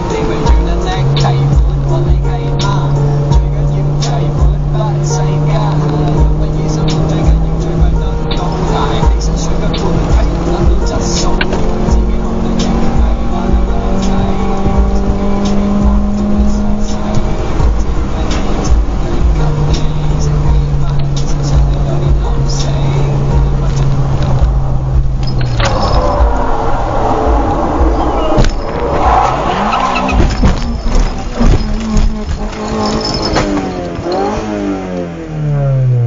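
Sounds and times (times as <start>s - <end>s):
car engine drone: 0.0s - 36.0s
road rumble: 0.0s - 36.0s
tyre squeal: 25.2s - 34.6s.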